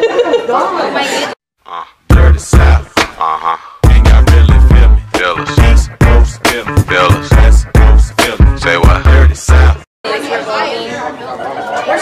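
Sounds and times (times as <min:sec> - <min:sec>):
people chattering and laughing: 0:00.0 - 0:01.4, 0:10.0 - 0:12.0.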